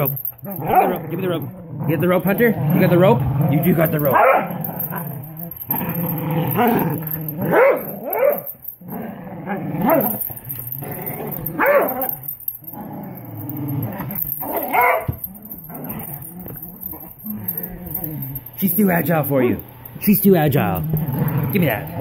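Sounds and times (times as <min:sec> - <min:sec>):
dogs growling: 0:00.0 - 0:22.0
dogs barking: 0:00.4 - 0:01.1, 0:04.0 - 0:05.6, 0:06.5 - 0:08.6, 0:09.5 - 0:10.3, 0:11.3 - 0:12.3, 0:14.1 - 0:17.0.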